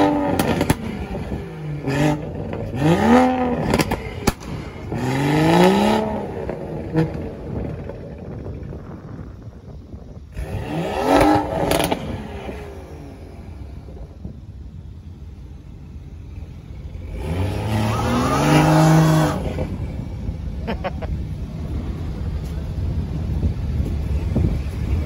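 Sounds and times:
car engine revving: 0.0s - 8.2s, 10.4s - 14.4s, 16.2s - 22.2s
exhaust crack: 0.0s - 14.5s.

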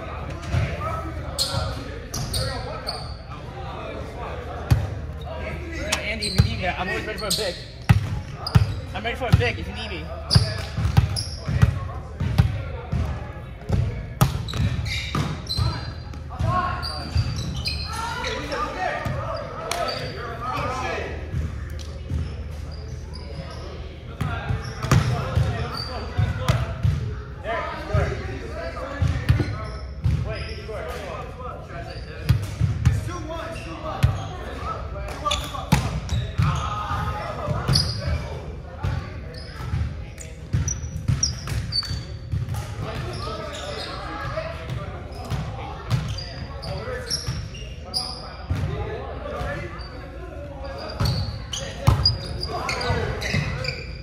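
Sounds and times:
players calling out: 0.1s - 21.2s
ball bouncing on gym floor: 7.9s - 9.6s, 10.3s - 15.4s.

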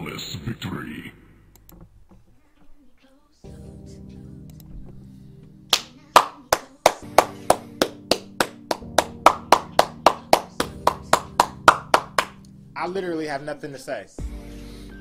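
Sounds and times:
music holding a steady chord: 3.4s - 15.0s
person clapping hands: 5.7s - 12.4s.

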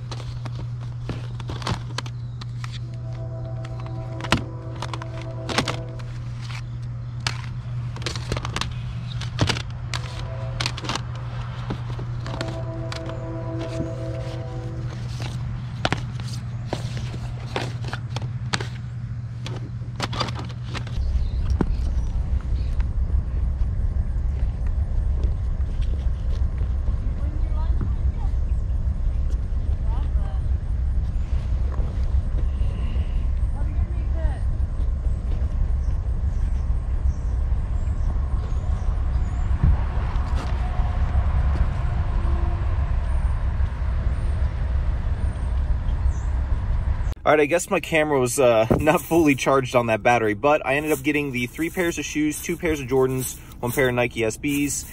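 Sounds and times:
wind rumble on microphone: 20.8s - 47.2s.

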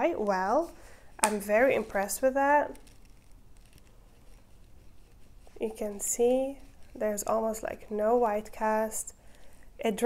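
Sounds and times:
fingers rubbing skin: 1.3s - 8.8s.

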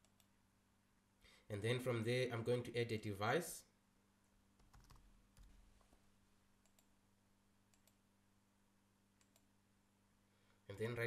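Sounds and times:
computer keyboard keystrokes: 4.6s - 5.5s
mouse clicks: 7.7s - 8.0s, 9.2s - 9.5s.

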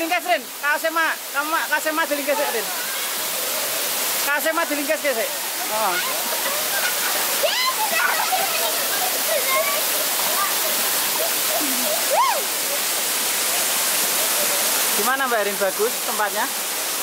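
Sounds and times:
water rushing over rocks: 0.0s - 17.0s
children calling: 5.4s - 12.8s.

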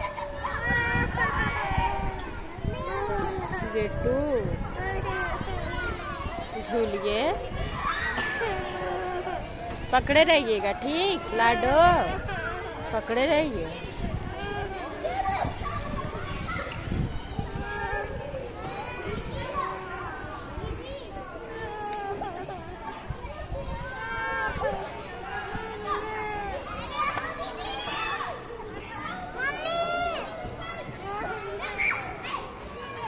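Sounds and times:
children talking and calling out: 0.0s - 33.0s.

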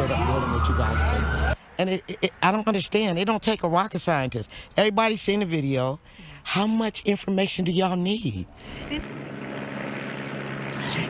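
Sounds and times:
engine drone: 0.0s - 1.6s, 8.5s - 11.0s.

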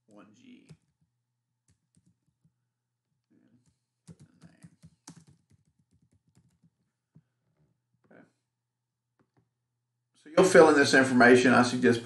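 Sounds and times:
faint keyboard typing: 1.7s - 2.5s, 3.5s - 7.8s.

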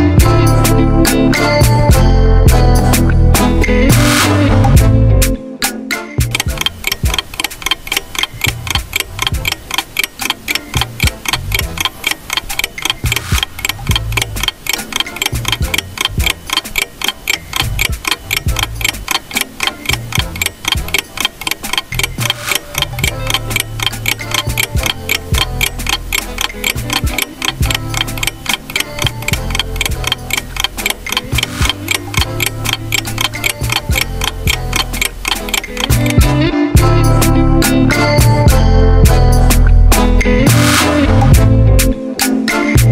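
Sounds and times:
rapid clock ticking: 6.2s - 36.9s, 38.0s - 39.6s, 42.2s - 42.9s.

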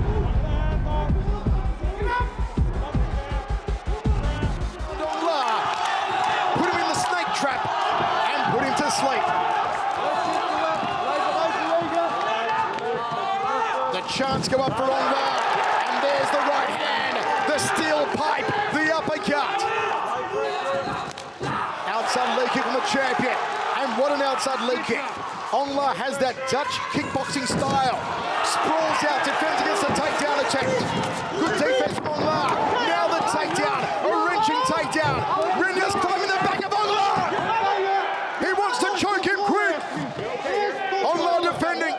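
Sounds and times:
voices shouting: 2.0s - 41.9s.

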